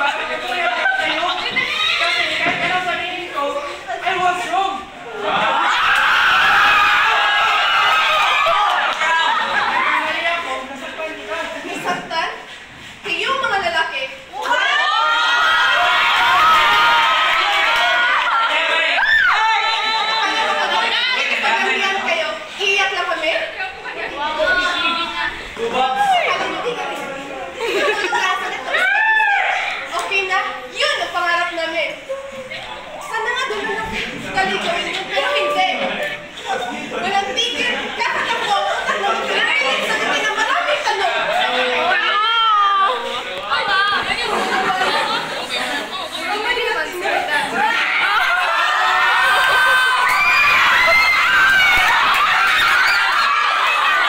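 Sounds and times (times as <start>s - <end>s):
people chattering and laughing: 0.0s - 54.0s.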